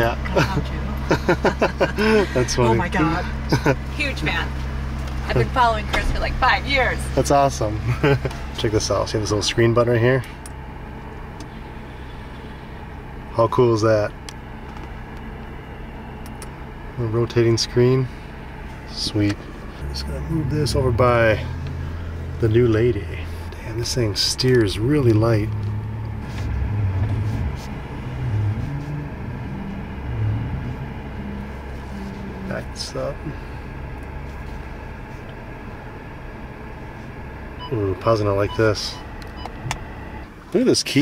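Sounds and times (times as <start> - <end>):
car cabin hum idling: 0.0 - 41.0.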